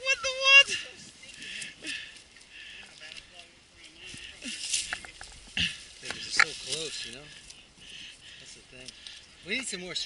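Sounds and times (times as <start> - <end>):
man speaking: 0.0 - 1.0, 5.8 - 7.4.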